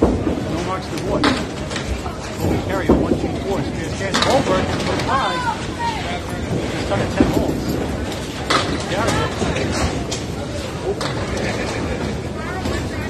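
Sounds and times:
bowling balls rolling on lanes: 0.0s - 13.0s
bowling pins clattering: 0.0s - 13.0s.

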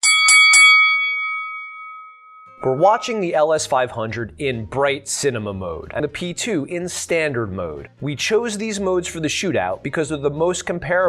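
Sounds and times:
boxing ring bell ringing: 0.0s - 3.6s.

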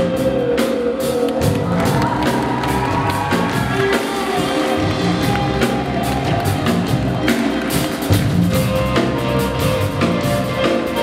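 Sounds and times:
drum kit and cymbals: 0.0s - 11.0s
live band playing: 0.0s - 11.0s.

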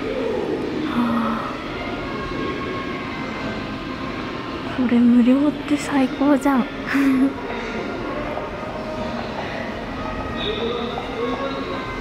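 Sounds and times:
exhibit hall rumble and hum: 0.0s - 12.0s.

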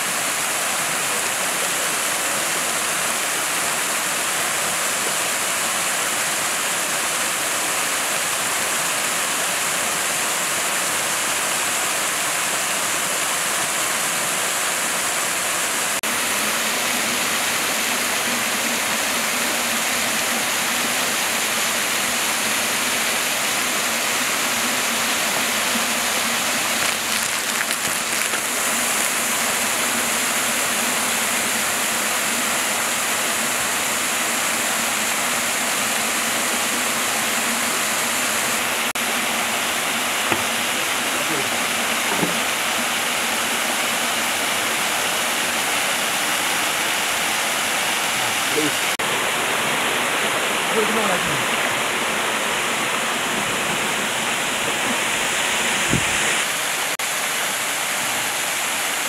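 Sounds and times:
waterfall rushing: 0.0s - 59.0s.

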